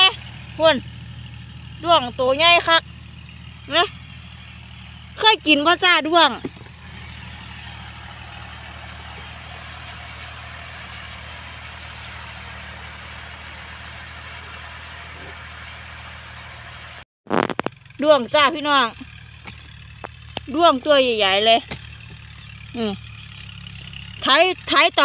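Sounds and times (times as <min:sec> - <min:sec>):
distant tractor engine hum: 0:00.0 - 0:25.0.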